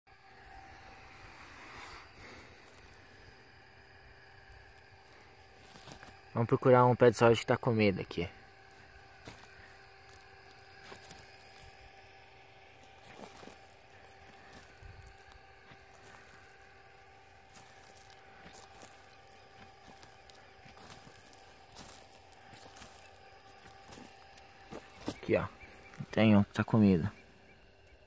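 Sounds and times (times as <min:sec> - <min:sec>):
faint steady hum: 0:00.1 - 0:28.0
footsteps on dry straw: 0:01.3 - 0:06.4, 0:08.4 - 0:26.2.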